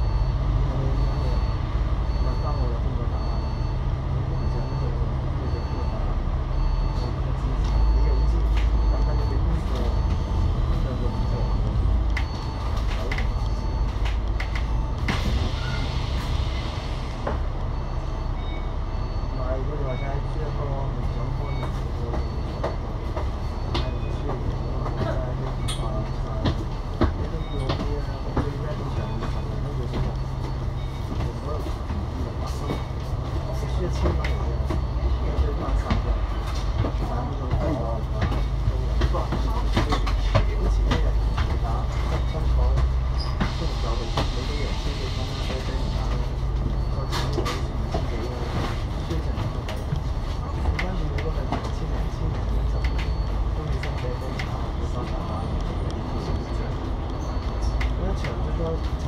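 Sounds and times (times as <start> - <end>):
diesel bus engine idling: 0.0 - 58.9.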